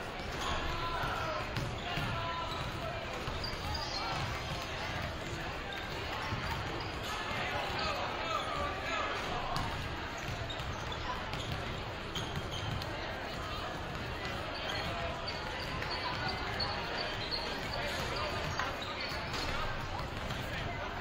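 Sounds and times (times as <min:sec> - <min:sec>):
crowd chatter: 0:00.0 - 0:21.0
basketballs bouncing on hardwood floor: 0:01.0 - 0:07.1, 0:09.6 - 0:12.9, 0:13.7 - 0:18.6, 0:19.3 - 0:20.6.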